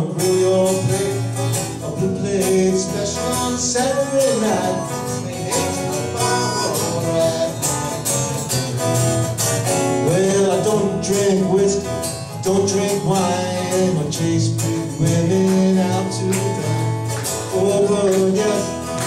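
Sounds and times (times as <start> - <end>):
bass guitar: 0.0 - 19.0
strummed acoustic guitar: 0.0 - 19.0.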